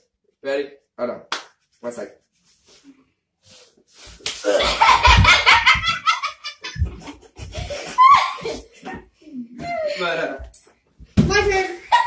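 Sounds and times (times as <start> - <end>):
people laughing loudly: 4.5 - 8.8.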